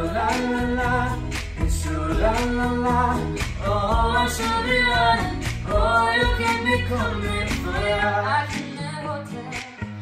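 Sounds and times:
girl and young man singing duet: 0.0 - 10.0.

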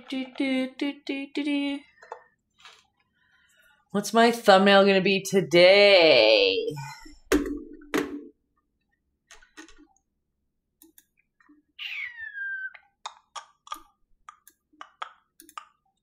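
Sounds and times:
computer mouse and keyboard clicks: 13.1 - 16.0.

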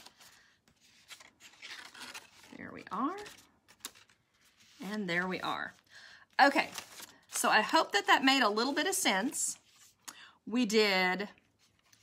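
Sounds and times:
cardstock rustling and creasing: 0.0 - 4.8, 6.5 - 7.5.

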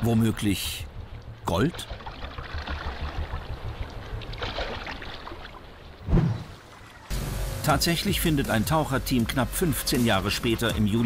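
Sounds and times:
faint water sounds: 0.0 - 11.0
low underwater rumble: 0.9 - 6.4.

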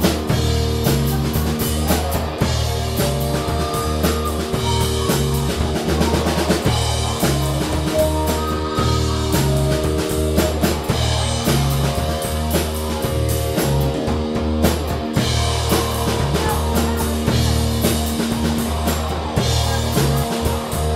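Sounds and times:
bass line: 0.0 - 20.9
drum kit beat: 0.0 - 20.9
electric guitars: 0.0 - 20.9.

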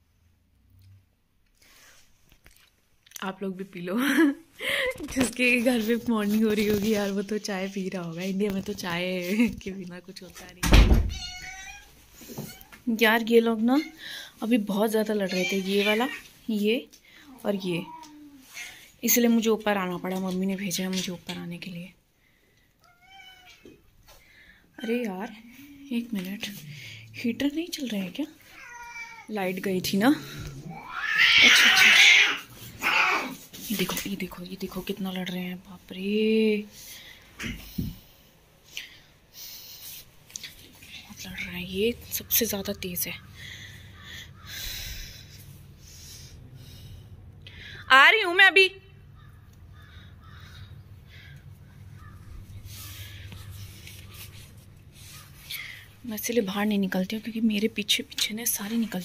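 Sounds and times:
cat meowing faintly: 11.1 - 12.8, 22.8 - 23.8, 28.5 - 29.3
steady low hum: 25.3 - 28.2, 34.2 - 59.0
harsh animal calls: 30.2 - 33.4, 43.2 - 45.8, 49.0 - 55.5.

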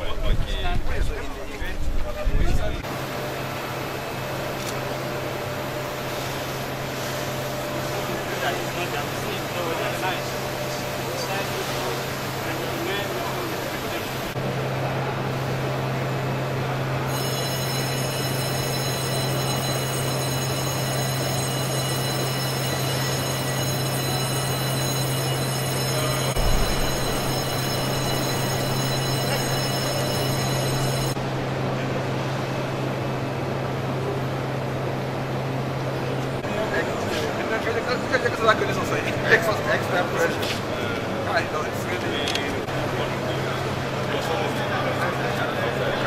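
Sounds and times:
machinery hum and low drone: 2.2 - 37.5
high whining tones: 17.1 - 31.2
low thud: 26.4 - 28.6.

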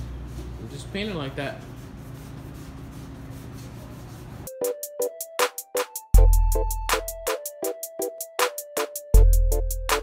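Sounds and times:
sandpaper rubbing on plastic: 0.3 - 4.5.

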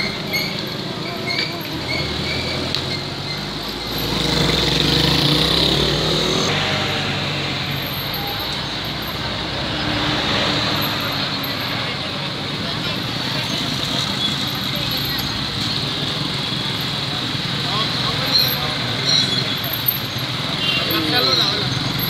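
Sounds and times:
indistinct voices: 0.0 - 22.0
motorcycle engines: 0.0 - 22.0
street traffic: 0.0 - 22.0.

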